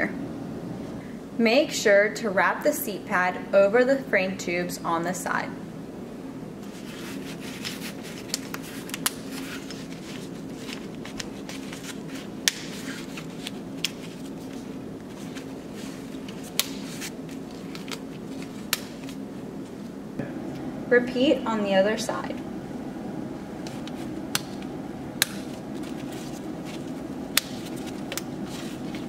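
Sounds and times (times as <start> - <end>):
low steady hum: 0.0 - 29.0
fabric rubbing on frame: 6.6 - 19.8, 25.4 - 29.0.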